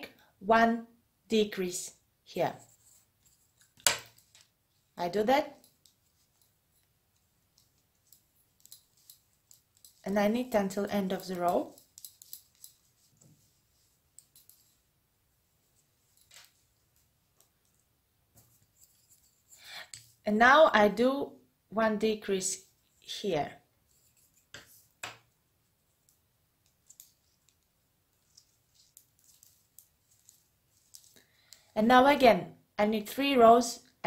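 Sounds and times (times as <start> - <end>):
knitting needles clicking: 5.6 - 13.3, 14.1 - 14.8, 26.0 - 31.7.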